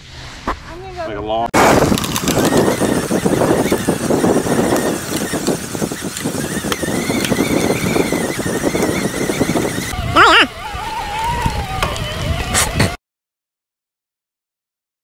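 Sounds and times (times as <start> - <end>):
bike tyres rattling on dirt trail: 1.6 - 9.9
wavering vocal cry: 9.9 - 12.8.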